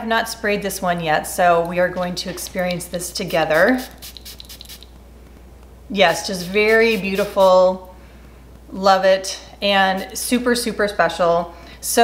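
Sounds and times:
spray bottle spritzing: 3.5s - 4.9s, 6.4s - 7.6s.

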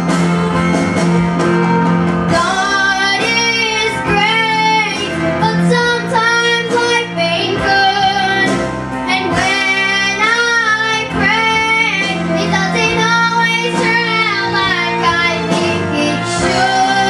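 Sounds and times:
instrumental backing music: 0.0s - 17.0s
girl singing a ballad: 2.3s - 17.0s.

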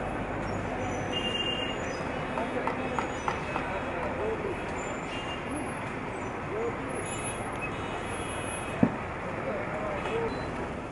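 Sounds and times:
traffic noise: 0.0s - 10.9s
voices of passers-by: 0.0s - 10.9s.

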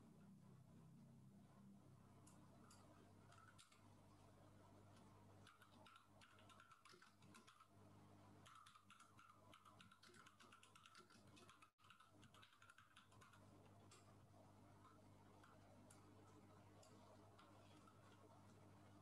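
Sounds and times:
keyboard typing: 2.6s - 3.9s, 5.4s - 7.8s, 8.4s - 14.1s, 14.8s - 18.7s.

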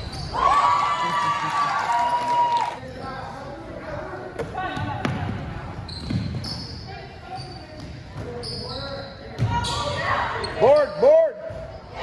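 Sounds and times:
sneaker squeaks: 0.0s - 0.6s, 4.6s - 12.0s.

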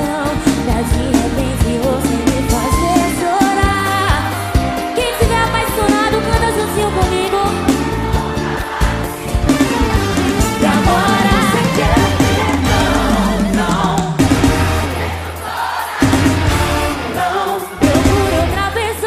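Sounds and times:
woman singing: 0.0s - 8.3s, 10.6s - 14.2s, 17.1s - 19.0s
drum and bass beat: 0.0s - 19.0s.

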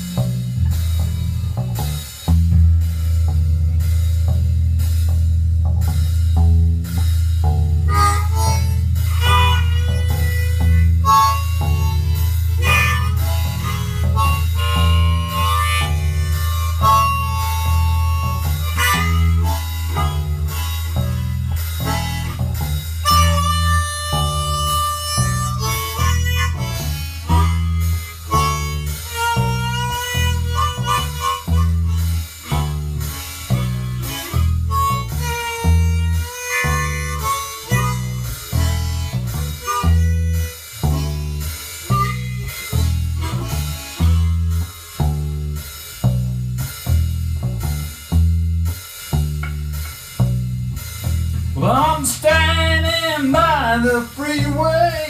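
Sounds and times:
bass line: 0.0s - 55.0s
drums: 0.0s - 55.0s
harmonica solo: 7.5s - 48.0s, 51.6s - 55.0s.

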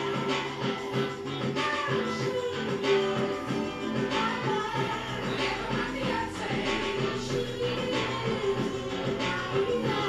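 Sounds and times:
song with steady beat: 0.0s - 10.0s.

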